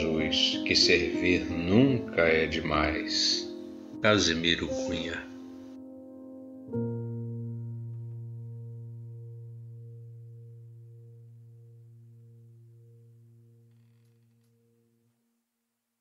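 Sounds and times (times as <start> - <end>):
music chord ringing: 0.0 - 15.1.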